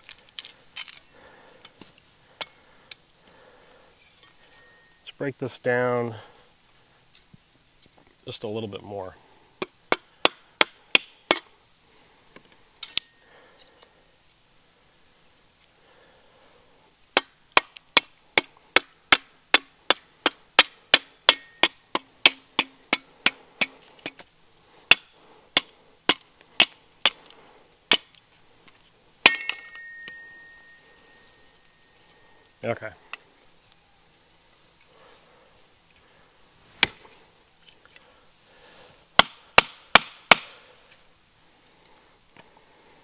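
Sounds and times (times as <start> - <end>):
wooden baton striking steel blade: 20.6 - 23.8, 29.2 - 30.8
blade ringing: 29.2 - 32.0.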